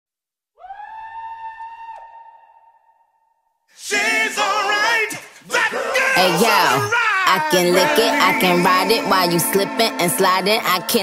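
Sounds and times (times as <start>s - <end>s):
high held vocal note: 5.6s - 11.0s.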